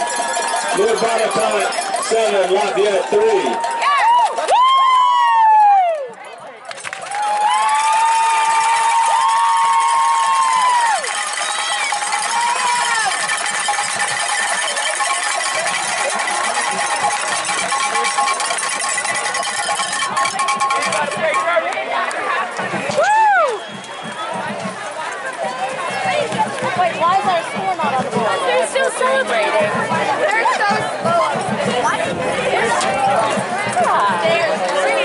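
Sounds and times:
crowd cheering and yelling: 0.0s - 35.0s.

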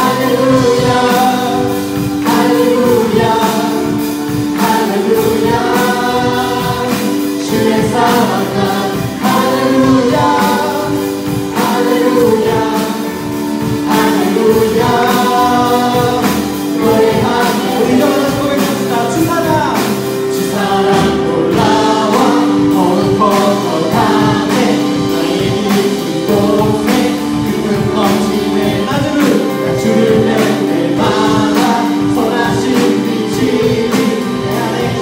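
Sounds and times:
group singing in harmony: 0.0s - 35.0s
steady beat and instruments: 0.0s - 35.0s.

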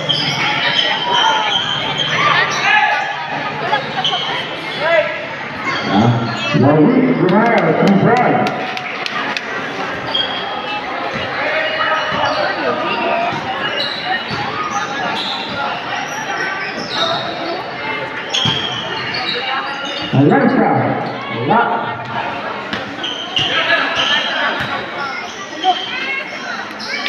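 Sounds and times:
shouts and chatter: 0.0s - 27.0s.

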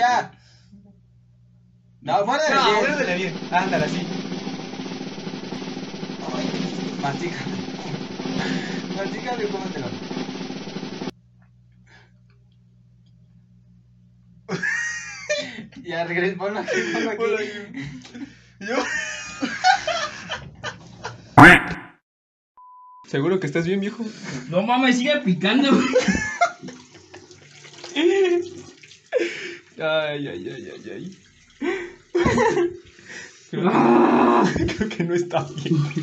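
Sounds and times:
low room hum: 0.0s - 21.4s
drum roll percussion: 2.4s - 11.1s
brief vocal sound: 21.4s - 21.9s
water splashing from sink tap: 26.0s - 32.9s
man rinsing his mouth: 26.6s - 29.8s.

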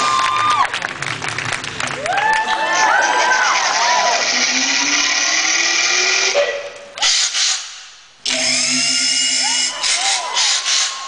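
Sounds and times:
audience screaming and cheering: 0.0s - 1.1s, 1.8s - 7.2s, 9.3s - 11.0s
drill-like buzzing through microphone: 7.1s - 10.9s.

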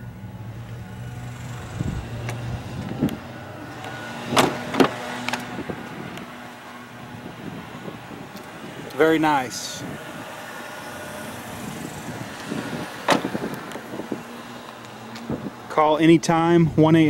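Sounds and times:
car door clicks and knocks: 4.3s - 5.4s, 13.0s - 13.8s.

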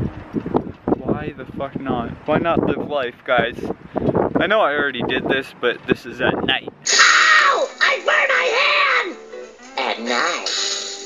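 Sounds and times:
cartoon voice crying out: 6.8s - 9.2s, 9.8s - 10.7s
background music: 6.8s - 11.0s.

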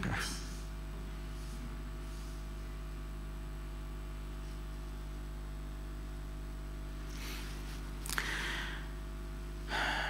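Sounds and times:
man breathing: 7.1s - 9.0s, 9.6s - 10.0s
sharp intake of breath: 7.1s - 9.0s, 9.7s - 10.0s.

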